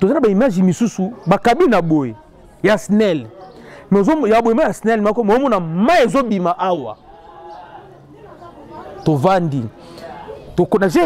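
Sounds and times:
man's voice: 0.0s - 3.3s, 3.9s - 7.0s, 9.0s - 9.7s, 10.6s - 11.0s.

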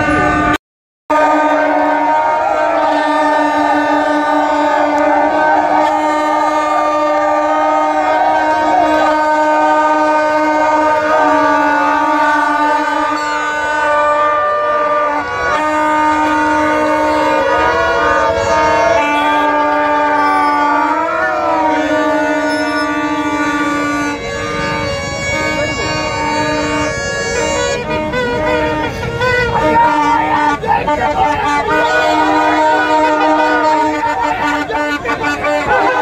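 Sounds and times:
crowd shouting: 0.0s - 36.0s
plastic horns blowing: 0.0s - 36.0s.

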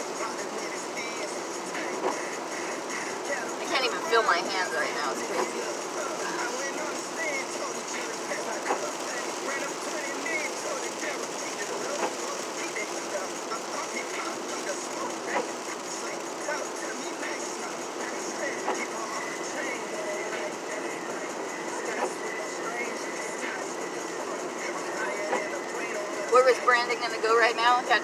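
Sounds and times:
faint voices: 0.0s - 28.0s
road noise inside car: 0.0s - 28.0s.

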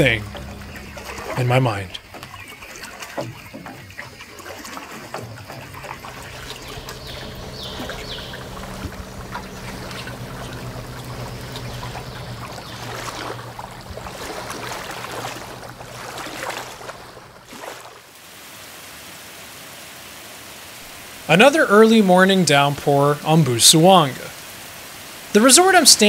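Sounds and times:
low hum: 0.0s - 4.0s, 5.0s - 18.0s
water lapping and trickling: 0.0s - 26.0s.

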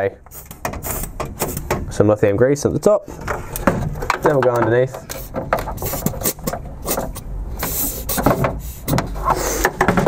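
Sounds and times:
can and hands clicking and knocking: 3.5s - 10.0s.

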